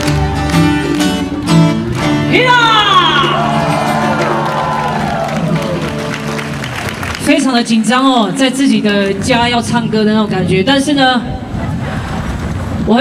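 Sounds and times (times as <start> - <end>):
folk band strumming: 0.0 - 10.6.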